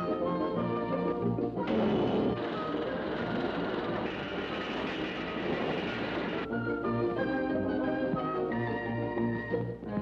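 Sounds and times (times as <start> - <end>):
cartoon metal clatter: 1.7 - 6.5.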